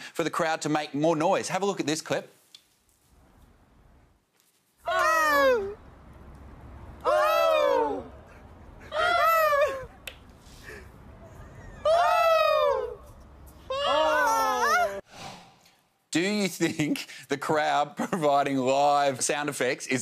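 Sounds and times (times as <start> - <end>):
person shrieking: 11.7 - 13.0, 13.7 - 15.0.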